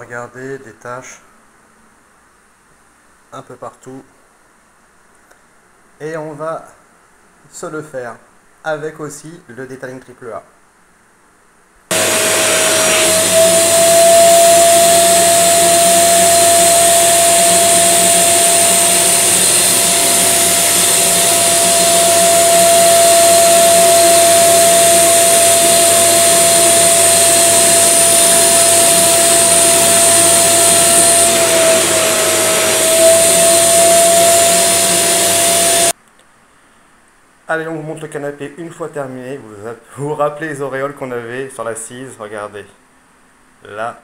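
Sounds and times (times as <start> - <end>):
suction motor whining: 11.9 - 35.9.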